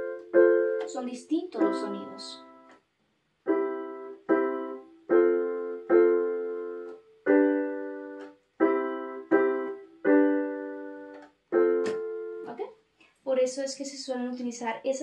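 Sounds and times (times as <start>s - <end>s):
electronic keyboard piano chords: 0.0s - 12.6s.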